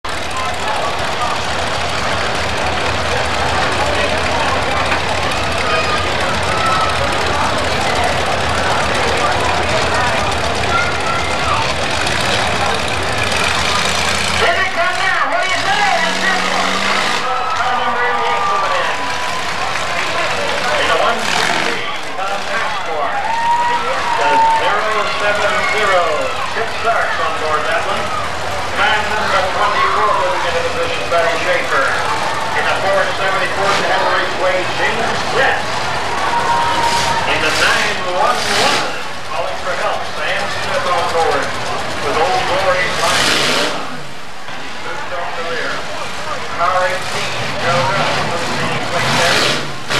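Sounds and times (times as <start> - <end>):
car engines rumbling: 0.0 - 49.9
crowd chatter: 0.0 - 49.9.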